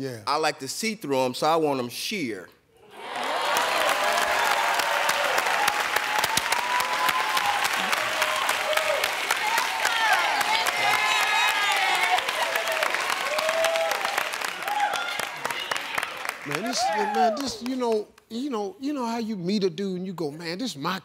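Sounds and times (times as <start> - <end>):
audience applauding: 2.9 - 18.2
voices calling out and whooping: 6.2 - 17.8.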